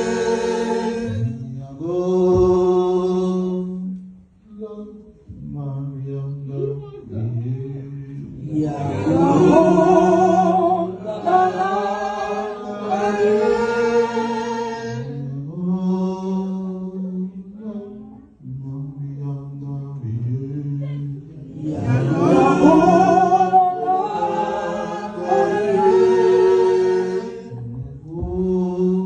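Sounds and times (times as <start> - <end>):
chanting with long held notes: 0.0 - 29.0.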